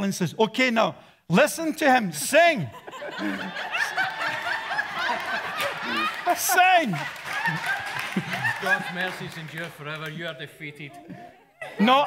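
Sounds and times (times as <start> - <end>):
people chuckling: 2.7 - 10.1.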